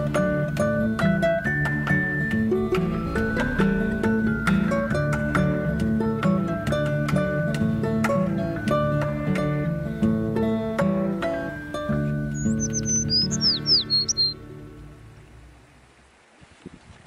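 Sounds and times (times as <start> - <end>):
plucked acoustic guitar music: 0.0 - 14.4
bird chirping: 12.2 - 14.4.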